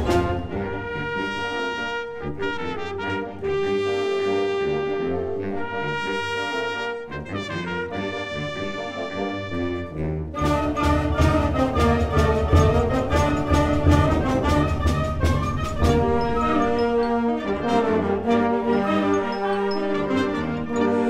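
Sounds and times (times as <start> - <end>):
wind band playing: 0.0 - 21.0.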